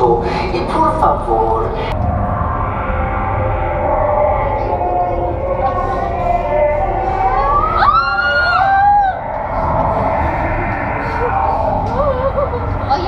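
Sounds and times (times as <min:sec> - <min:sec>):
eerie sliding tones: 0:00.0 - 0:13.0
crowd murmur: 0:02.0 - 0:13.0.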